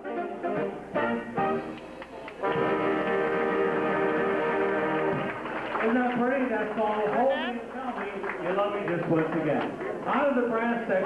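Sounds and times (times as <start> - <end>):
dance orchestra with brass: 0.0 - 1.8, 2.4 - 5.7.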